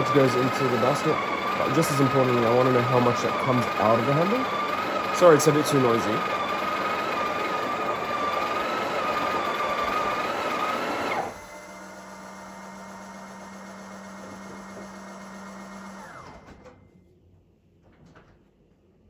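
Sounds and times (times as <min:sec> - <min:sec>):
coffee grinder whining: 0:00.0 - 0:16.4.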